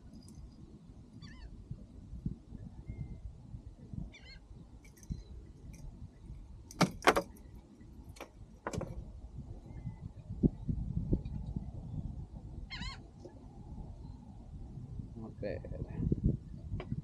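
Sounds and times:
low wind rumble on microphone: 0.0s - 17.0s
metal hooks clinking: 4.8s - 5.9s.

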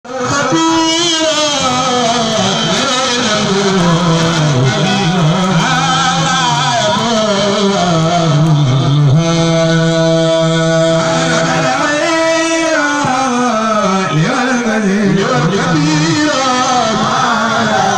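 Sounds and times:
man chanting into a microphone: 0.0s - 17.9s.

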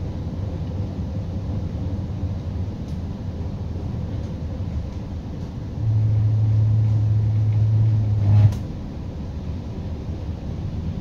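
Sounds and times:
loud steady low hum: 0.0s - 11.0s
train carriage rumbling: 0.0s - 11.0s.

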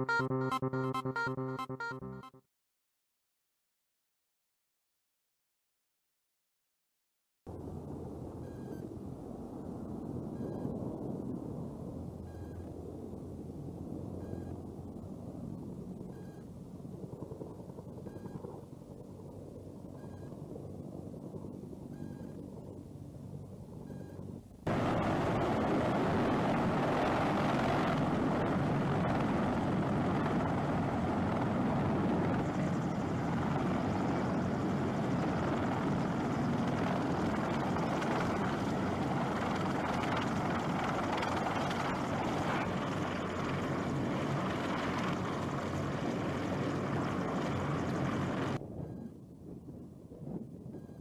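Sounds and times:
helicopter rotor and engine noise: 8.3s - 8.9s, 13.9s - 49.1s.

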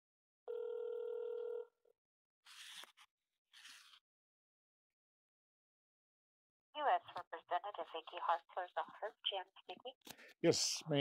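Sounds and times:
telephone ringback tone: 0.5s - 1.8s.

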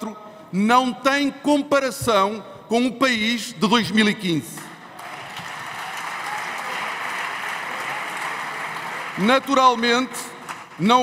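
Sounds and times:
crowd applause: 4.8s - 10.8s.

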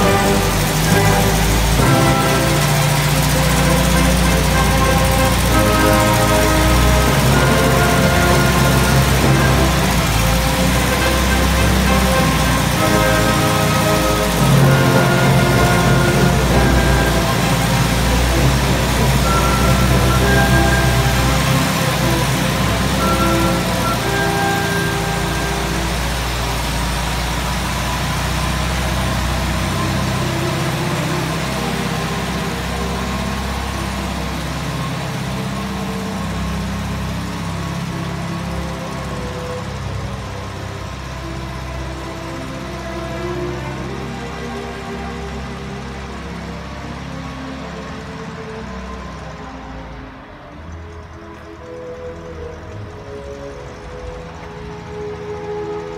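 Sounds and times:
bus engine driving off: 0.0s - 55.9s
music playing: 0.0s - 55.9s.

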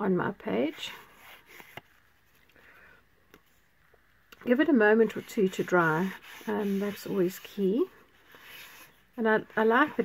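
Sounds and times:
paper rubbing on ink pad: 4.9s - 9.0s.

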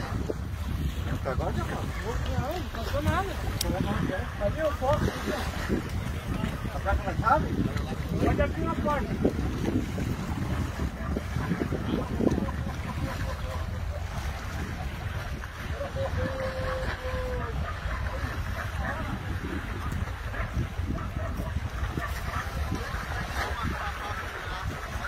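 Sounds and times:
wind rumbling on microphone: 0.0s - 25.0s.

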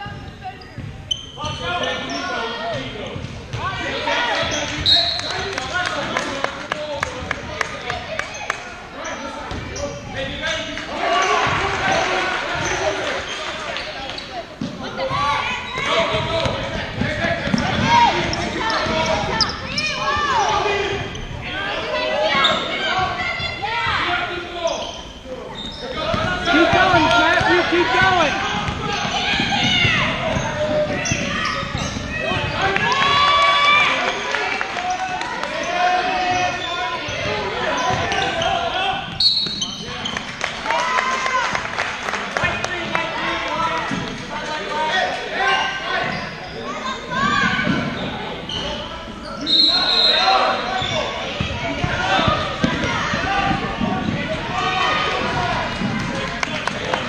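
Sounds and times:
voices echoing in a gym: 0.0s - 57.0s.

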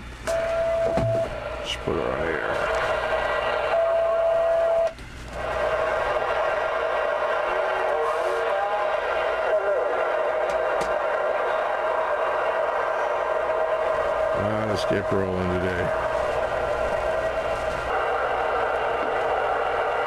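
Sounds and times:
radio static: 6.4s - 12.2s.

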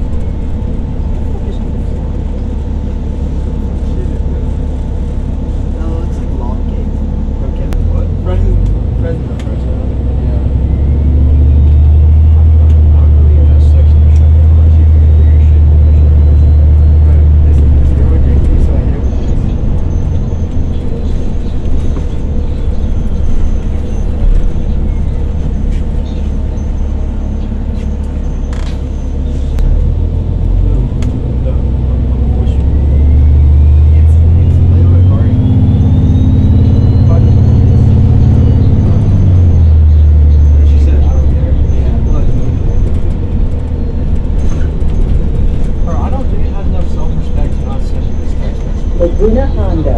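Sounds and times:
bus body rattling and clicking: 0.0s - 49.9s
bus engine drone: 0.0s - 49.9s
whine rising in pitch: 9.8s - 45.6s.

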